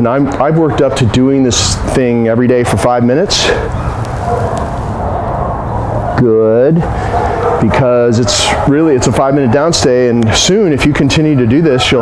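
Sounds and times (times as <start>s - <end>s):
steady low background noise: 0.0s - 12.0s.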